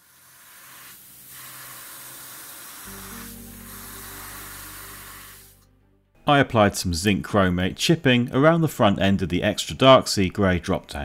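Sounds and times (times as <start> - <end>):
airbrush spraying hiss: 0.0 - 5.6.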